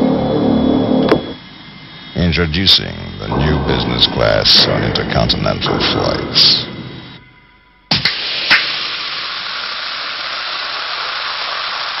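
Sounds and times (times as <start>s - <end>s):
steady hiss: 1.2s - 12.0s.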